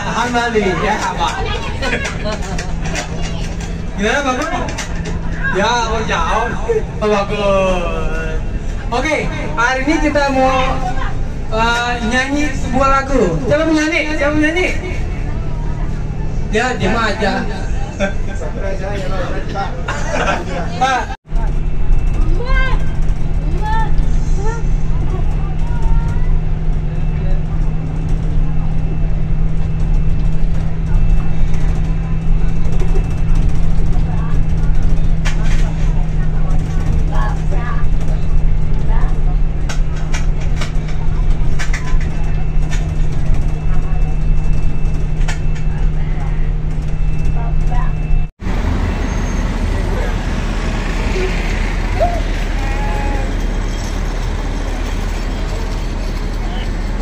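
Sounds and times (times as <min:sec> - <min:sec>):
faint passenger voices: 0:00.0 - 0:48.3, 0:49.5 - 0:57.0
bus engine and road noise: 0:00.0 - 0:57.0
outdoor crowd noise: 0:00.0 - 0:57.0.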